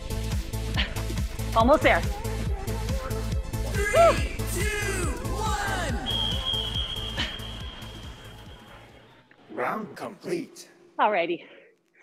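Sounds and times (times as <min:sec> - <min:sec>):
upbeat workout music: 0:00.0 - 0:09.1.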